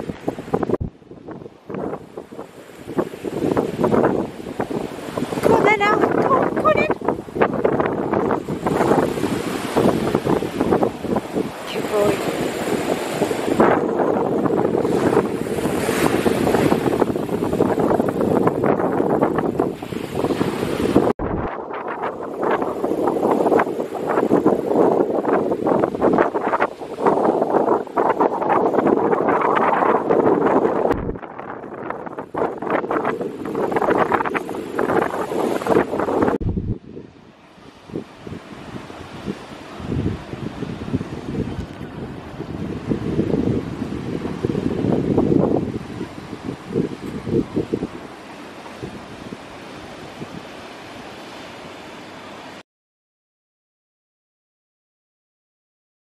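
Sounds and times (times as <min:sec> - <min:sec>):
wind buffeting microphone: 0:00.0 - 0:51.5.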